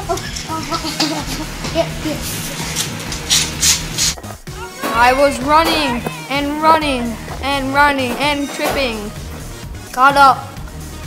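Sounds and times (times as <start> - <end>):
boys' voices: 0.0 - 2.5, 4.5 - 9.2, 9.9 - 10.6
short hissing noises: 2.3 - 4.2.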